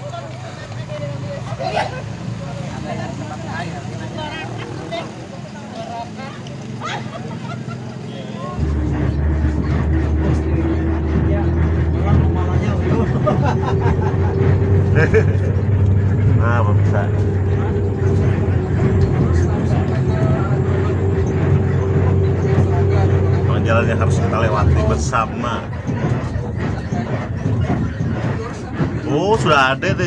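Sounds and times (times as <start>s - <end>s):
group of people chattering: 0.0s - 30.0s
steady engine hum: 0.0s - 30.0s
vehicle rumble from inside cabin: 6.3s - 28.9s.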